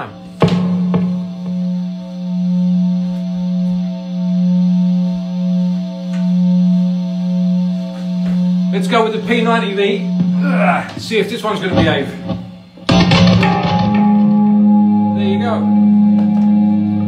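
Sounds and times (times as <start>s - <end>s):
electric guitar note ringing: 0.0s - 17.0s.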